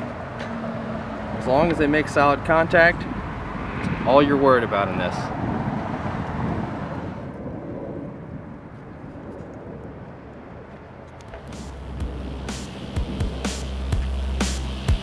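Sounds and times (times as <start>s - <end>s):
low rushing noise: 0.0s - 15.0s
music with bass and drums: 11.4s - 15.0s.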